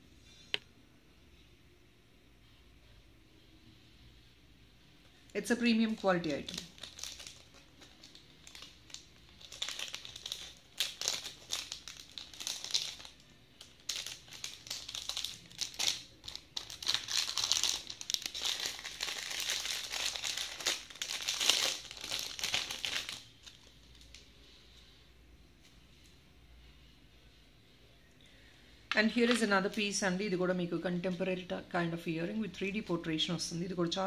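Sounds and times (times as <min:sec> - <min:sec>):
plastic packaging crinkling: 0:05.4 - 0:24.3.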